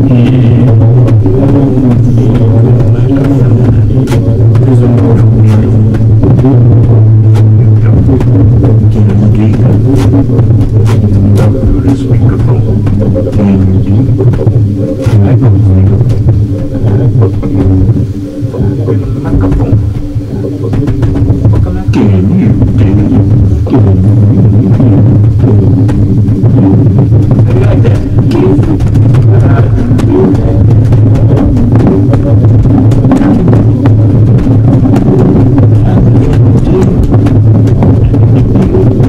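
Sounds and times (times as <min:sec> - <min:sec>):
crackles: 0:00.0 - 0:39.0
loud low drone: 0:00.0 - 0:39.0.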